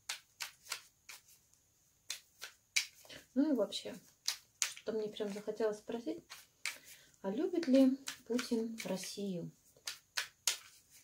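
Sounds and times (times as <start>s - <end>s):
cards being shuffled: 0.0s - 1.4s, 2.1s - 3.1s, 4.0s - 5.5s, 6.2s - 7.0s, 7.6s - 11.0s.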